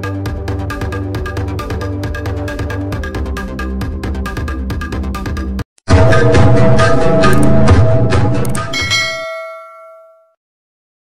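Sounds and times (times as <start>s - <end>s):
music sting: 5.9s - 9.0s
bell-like chime: 5.9s - 10.4s.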